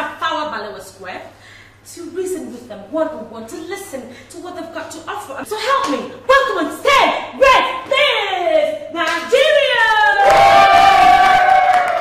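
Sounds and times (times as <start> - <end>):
woman shouting: 6.3 - 10.3
group cheering: 9.8 - 12.0.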